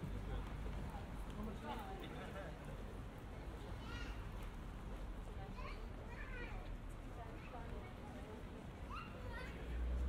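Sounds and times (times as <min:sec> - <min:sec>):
low city rumble: 0:00.0 - 0:10.0.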